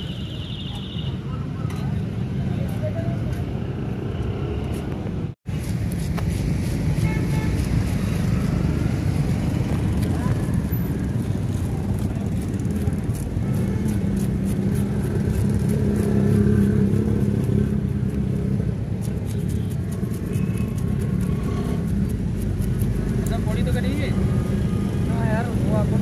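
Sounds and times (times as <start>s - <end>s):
vehicle engine rumbling: 0.0s - 26.0s
scaler scraping fish scales: 10.3s - 23.5s.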